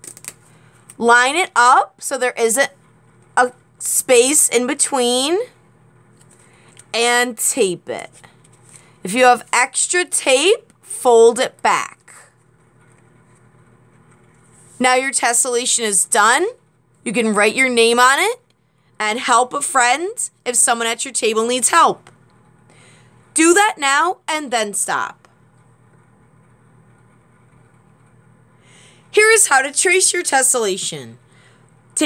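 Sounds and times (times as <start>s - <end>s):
paper and tape rustling: 0.0s - 0.4s
low electrical hum: 0.0s - 32.0s.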